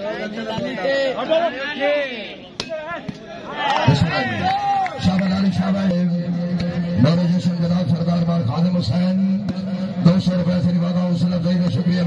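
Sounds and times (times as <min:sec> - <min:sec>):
crowd noise: 0:00.0 - 0:12.0.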